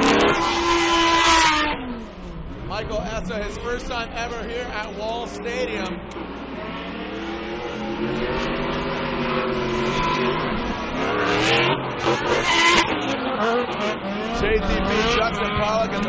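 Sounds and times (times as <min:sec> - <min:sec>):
car engines revving: 0:00.0 - 0:16.0.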